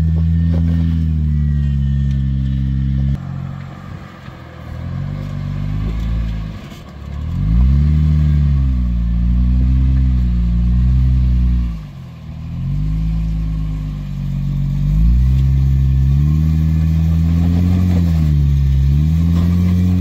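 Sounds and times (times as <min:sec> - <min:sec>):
engine revving under load: 0:00.0 - 0:20.0.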